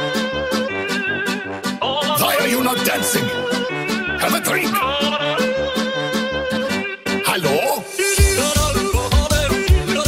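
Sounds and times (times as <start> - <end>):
vocal line over synths: 0.0 - 10.0
fast electronic dance music: 2.1 - 3.6, 7.3 - 10.0.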